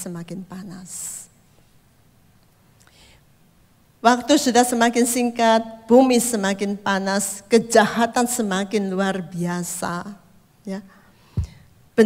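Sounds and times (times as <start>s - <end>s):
soft breathy hiss: 0.0s - 4.1s, 10.2s - 12.0s.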